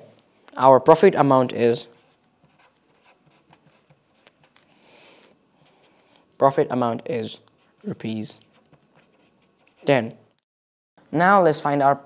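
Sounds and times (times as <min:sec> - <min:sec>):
pen scratching on paper: 0:01.9 - 0:04.6, 0:07.6 - 0:10.0.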